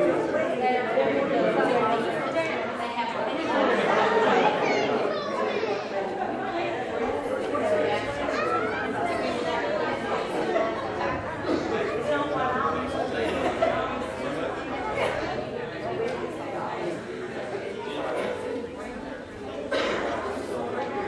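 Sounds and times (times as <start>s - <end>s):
people chattering in a hall: 0.0s - 21.0s.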